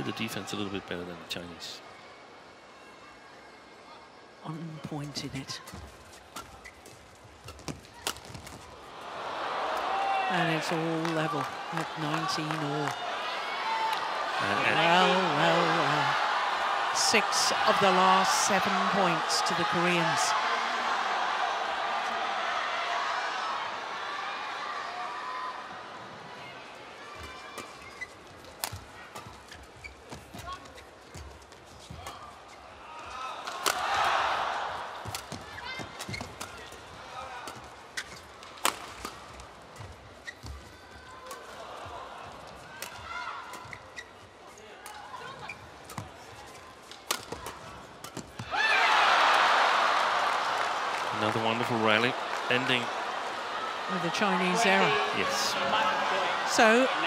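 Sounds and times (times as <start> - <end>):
arena crowd noise: 0.0 - 57.0
crowd cheering: 8.8 - 27.7, 32.9 - 35.9, 41.2 - 43.5, 48.4 - 57.0.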